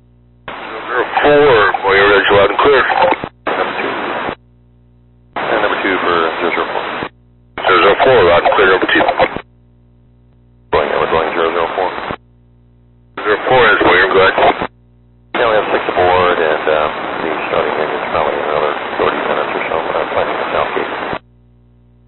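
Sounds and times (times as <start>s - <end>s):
low steady hum: 0.0s - 22.0s
speech over two-way radio: 0.5s - 4.4s, 5.4s - 9.4s, 10.7s - 12.2s, 13.2s - 14.7s, 15.4s - 21.2s.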